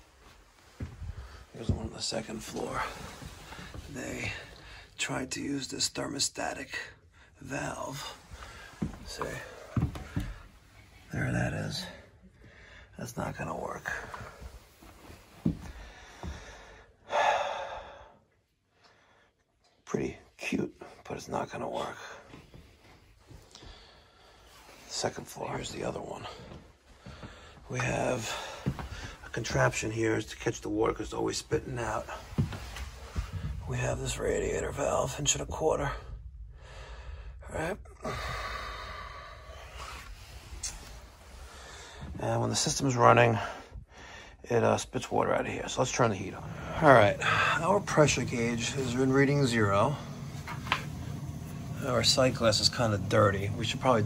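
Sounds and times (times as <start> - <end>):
soft handling bumps: 0.0 - 4.5, 8.0 - 11.4, 31.2 - 35.2
breathy exhale: 36.5 - 40.8.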